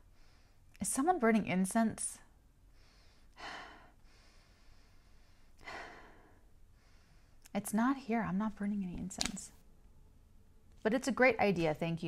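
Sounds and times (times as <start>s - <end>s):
woman breathing: 0.0s - 0.8s, 2.6s - 7.5s.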